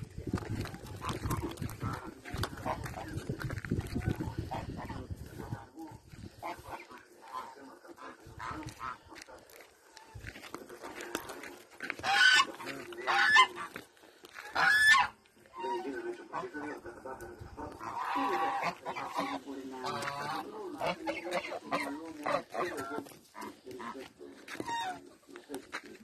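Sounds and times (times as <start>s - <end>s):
waterfowl honking: 6.4s - 9.2s, 11.9s - 13.8s, 14.4s - 16.8s, 17.7s - 25.4s.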